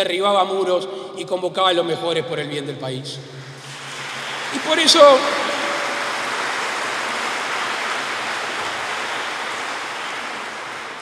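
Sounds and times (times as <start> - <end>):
audience applauding: 3.5 - 11.0.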